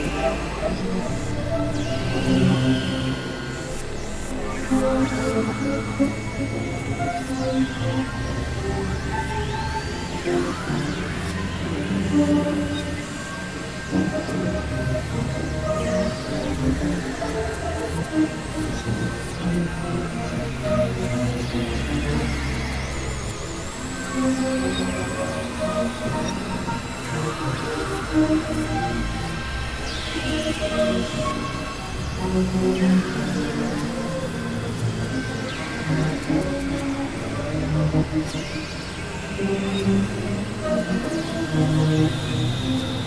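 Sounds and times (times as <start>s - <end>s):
electronic synthesizer drone music: 0.0s - 43.0s.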